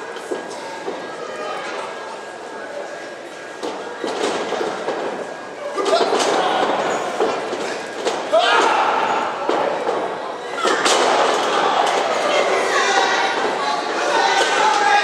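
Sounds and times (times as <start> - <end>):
spectators shouting: 11.4 - 15.0.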